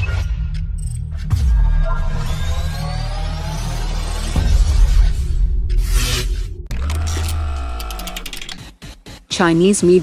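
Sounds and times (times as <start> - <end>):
ticking clicks: 6.7 - 8.7.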